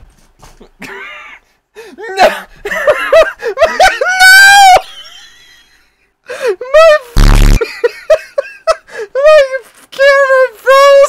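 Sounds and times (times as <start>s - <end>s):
high-pitched voice crying: 3.1s - 5.0s
harsh buzz: 7.2s - 7.6s.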